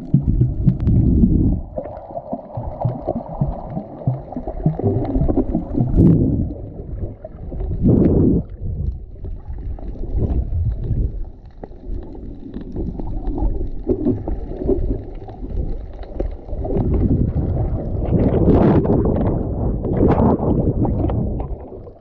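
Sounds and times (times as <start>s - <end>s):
muffled underwater sloshing: 0.0s - 22.0s.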